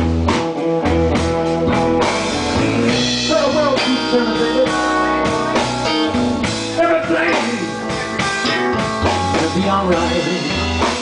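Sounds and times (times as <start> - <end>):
electric guitar: 0.0 - 11.0
live blues band playing: 0.0 - 11.0.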